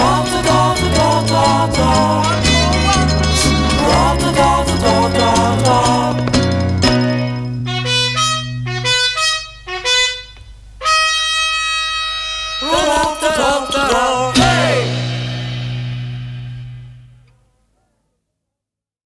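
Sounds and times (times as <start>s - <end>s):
pop song from a record: 0.0s - 7.0s, 12.6s - 15.4s.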